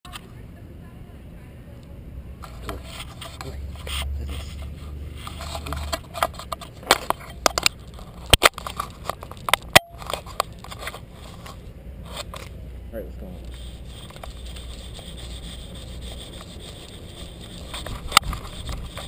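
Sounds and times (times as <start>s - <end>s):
rubbing against camera: 2.4s - 12.6s, 13.3s - 19.0s
sharp clicks and knocks: 5.2s - 11.6s.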